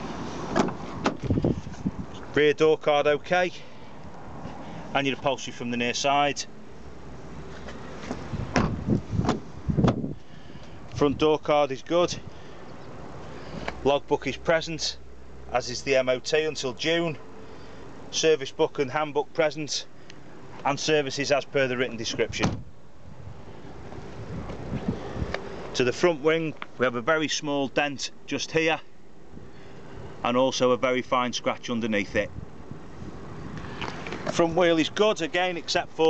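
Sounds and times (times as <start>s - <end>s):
car doors knocking and clunking: 0.5s - 1.4s, 8.1s - 10.1s
wind rumble on microphone: 1.1s - 2.2s, 8.2s - 10.2s, 22.2s - 25.4s.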